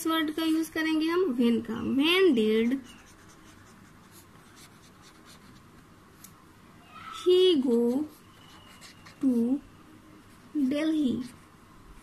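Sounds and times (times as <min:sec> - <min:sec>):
pencil scratching on paper: 0:02.6 - 0:05.6, 0:07.6 - 0:09.6, 0:10.3 - 0:12.0.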